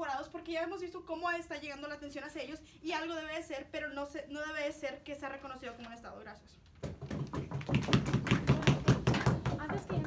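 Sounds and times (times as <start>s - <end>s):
people clapping: 7.0s - 10.0s.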